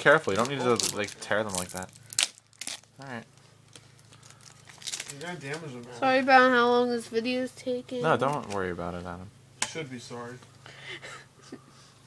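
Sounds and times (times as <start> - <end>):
wrapper crinkling: 0.0 - 5.5.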